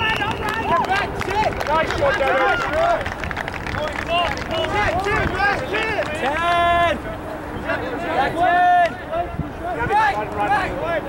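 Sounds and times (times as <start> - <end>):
distant shouts and calls: 0.0 - 11.0.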